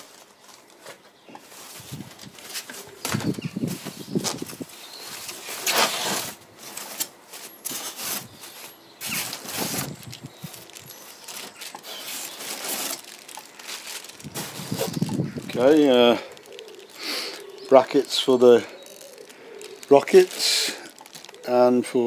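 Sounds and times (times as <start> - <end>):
paper and plastic bags rustling: 0.0 - 22.0.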